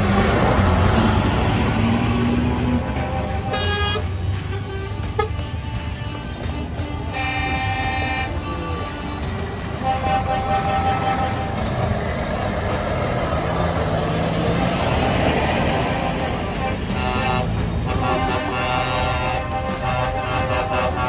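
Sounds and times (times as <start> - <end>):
truck diesel engine passing: 0.0 - 21.0
truck horn blasts: 0.0 - 21.0.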